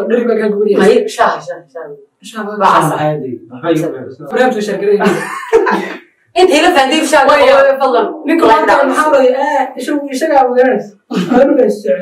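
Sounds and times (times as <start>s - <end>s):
people talking: 0.0s - 12.0s
cough or throat-clearing: 11.1s - 11.5s.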